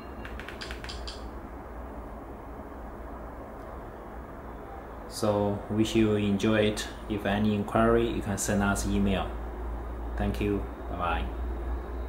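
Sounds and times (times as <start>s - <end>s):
low room hum: 0.0s - 12.0s
light sharp clicks: 0.2s - 1.3s.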